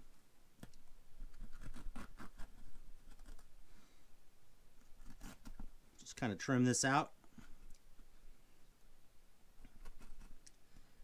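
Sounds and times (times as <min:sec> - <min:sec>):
razor blade scratching fabric: 0:01.3 - 0:03.5, 0:05.0 - 0:05.7.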